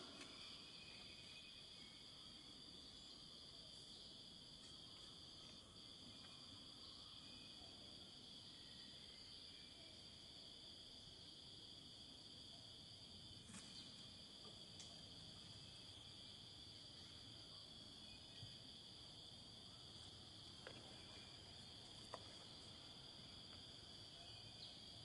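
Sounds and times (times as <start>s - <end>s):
insects droning: 0.0s - 25.0s.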